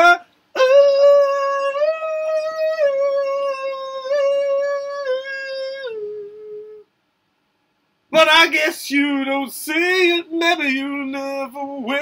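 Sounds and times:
man singing a held note: 0.0s - 6.9s.

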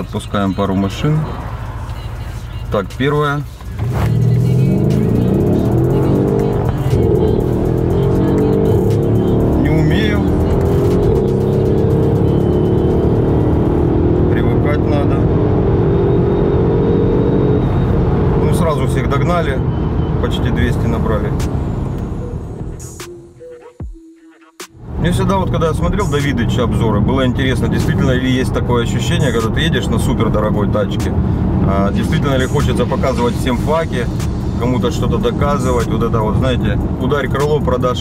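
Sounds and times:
car engine accelerating hard: 3.7s - 22.8s.

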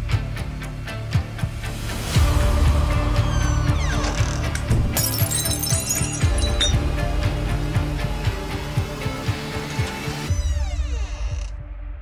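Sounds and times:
glass smashing: 4.9s - 7.0s.

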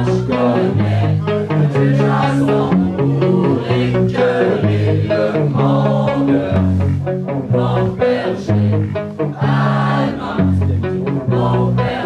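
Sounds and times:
live rock band playing: 0.0s - 12.0s
low bass line: 0.0s - 12.0s.

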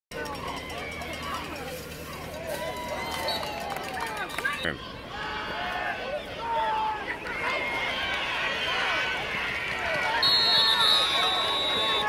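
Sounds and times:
spectators shouting and yelling: 0.1s - 12.0s.

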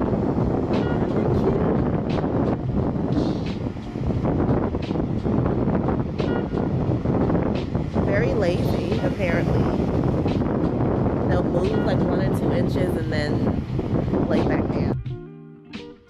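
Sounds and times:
wind buffeting microphone: 0.0s - 15.2s.

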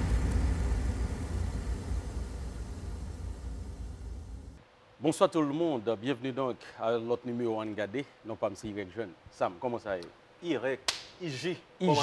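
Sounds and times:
low rumbling hissy effect: 0.0s - 7.5s.

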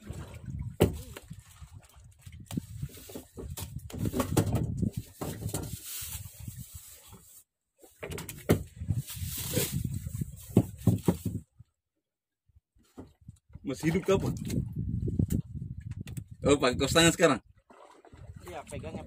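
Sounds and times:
sea: 0.0s - 19.0s
wind: 0.0s - 19.0s
fish thumping against wooden boat: 0.7s - 1.3s, 3.1s - 5.8s, 10.5s - 11.4s.

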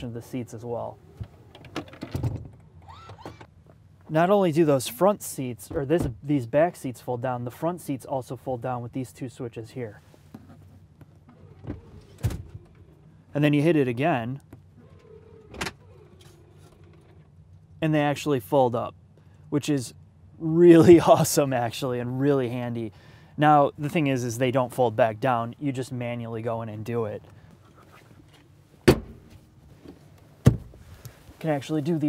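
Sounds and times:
seat clunk: 28.2s - 31.2s
soft thump: 30.4s - 30.8s.

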